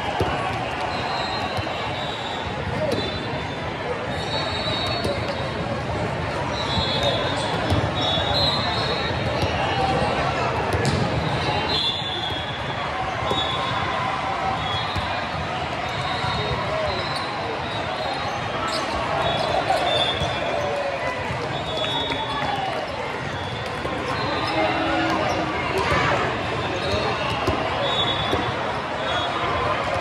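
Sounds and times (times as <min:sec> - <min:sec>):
murmur of voices: 0:00.0 - 0:30.0
volleyballs hit and bouncing: 0:04.8 - 0:11.5, 0:18.4 - 0:28.8.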